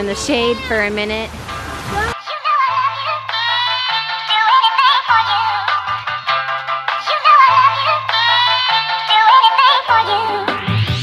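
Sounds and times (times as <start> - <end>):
electronic music with vocal: 2.0 - 11.0.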